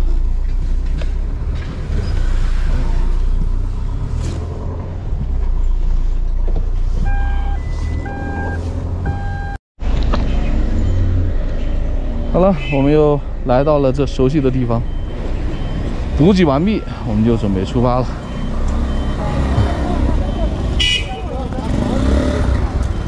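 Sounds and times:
electronic beeper: 7.1 - 9.6.

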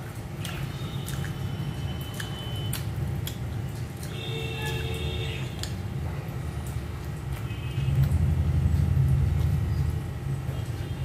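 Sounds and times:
soft wet squishes of food: 0.0 - 11.0
steady low hum: 0.0 - 11.0.

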